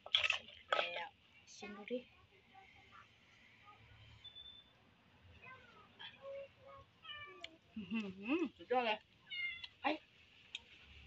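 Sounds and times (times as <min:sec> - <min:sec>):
cat meowing: 0:09.3 - 0:09.7.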